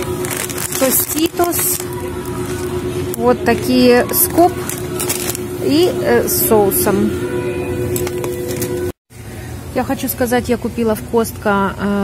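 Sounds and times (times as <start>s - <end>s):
low rumble: 0.0s - 8.9s
steady held tones: 0.0s - 9.0s.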